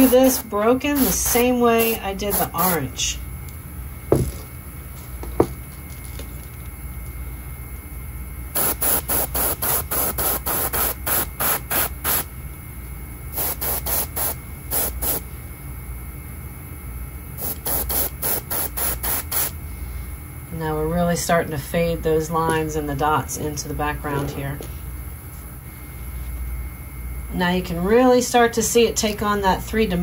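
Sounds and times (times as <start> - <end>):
airbrush spraying in bursts: 0.0 - 2.8, 8.6 - 12.3, 13.3 - 15.2, 17.4 - 19.6.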